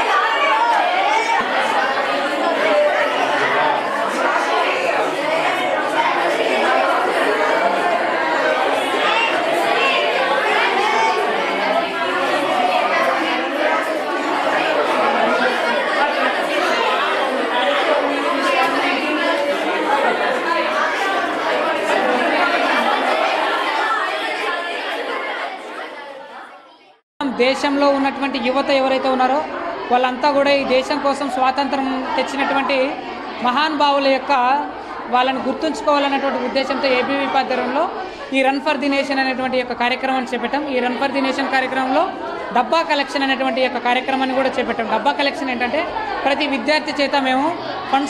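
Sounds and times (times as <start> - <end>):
students chattering in echoing room: 0.0 - 48.0.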